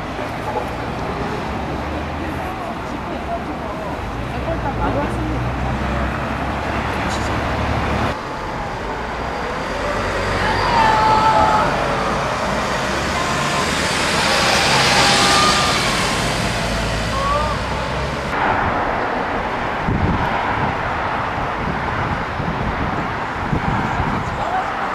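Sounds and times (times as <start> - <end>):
road traffic passing: 0.0 - 24.9.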